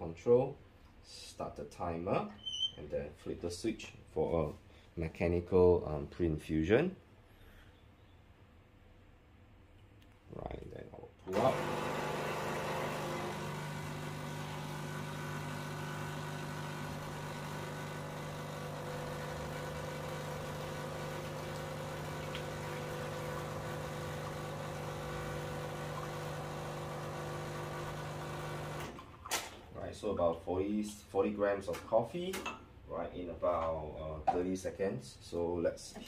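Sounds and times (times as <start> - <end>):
espresso machine pump humming: 11.3 - 29.0.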